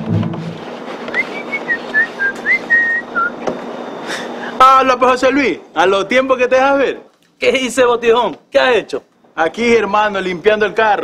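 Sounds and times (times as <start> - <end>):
low musical tail: 0.0 - 0.8
person whistling a tune: 1.1 - 3.3.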